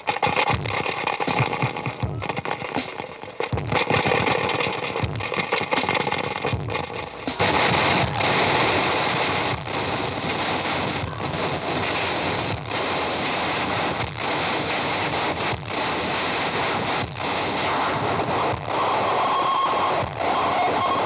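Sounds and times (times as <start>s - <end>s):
distorted noise blasts: 0.0s - 21.0s
loud wall of hissing noise: 0.0s - 21.0s.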